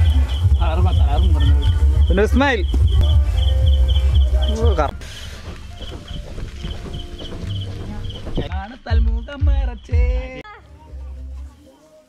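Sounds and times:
heavy low rumble: 0.0s - 5.0s
crickets chirping: 0.0s - 10.4s.

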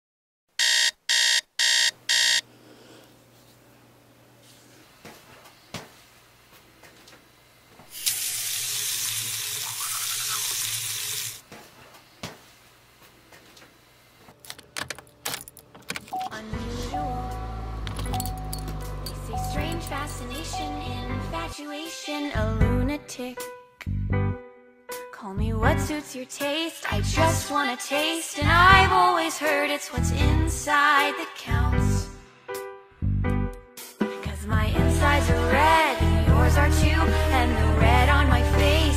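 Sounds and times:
alarm clock beeping: 0.6s - 2.4s
keys jangling: 14.5s - 16.2s, 17.8s - 20.4s.

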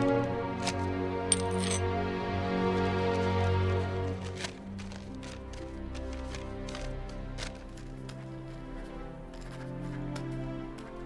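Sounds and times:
soft music sustained chord: 0.0s - 11.0s
high-pitched clink: 1.3s - 1.8s.

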